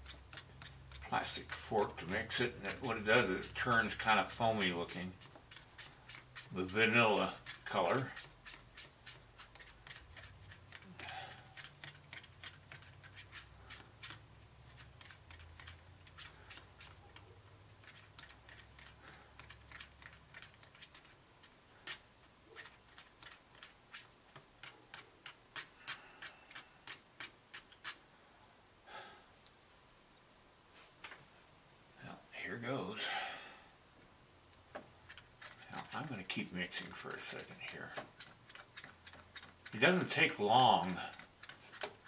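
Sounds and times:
plastic fork stirring in paper cup: 0.0s - 28.0s, 34.8s - 42.0s.

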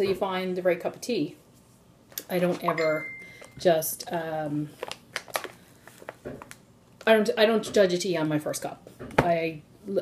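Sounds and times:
plastic pouch crinkling: 4.7s - 7.1s
sharp plastic crackles: 4.7s - 7.1s.

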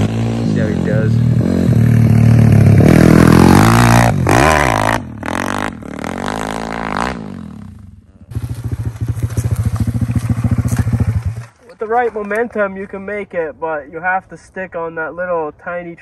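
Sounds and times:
motorbike engine revving hard: 0.0s - 11.5s
motorbike engine idling: 7.8s - 11.6s.

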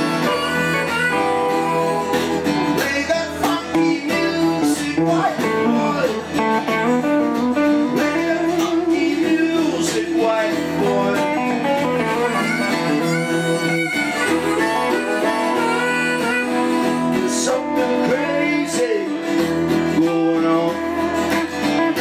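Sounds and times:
acoustic guitar blues: 0.0s - 22.0s
electric guitar blues: 0.0s - 22.0s.

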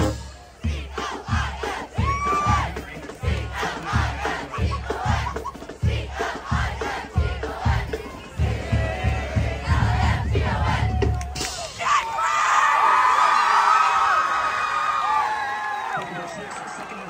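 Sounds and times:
marching band drums: 0.0s - 12.0s
crowd chanting and shouting: 0.0s - 12.4s.

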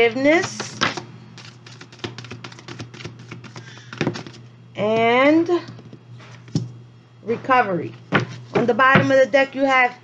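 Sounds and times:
deck of cards being shuffled: 0.5s - 4.4s.

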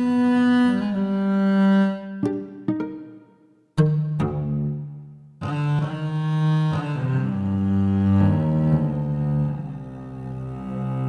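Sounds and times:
bass viol long bowed notes: 0.0s - 11.0s.

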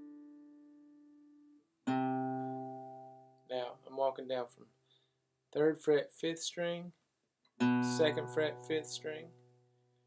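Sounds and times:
acoustic guitar plucked notes: 0.0s - 4.6s, 7.6s - 9.8s.

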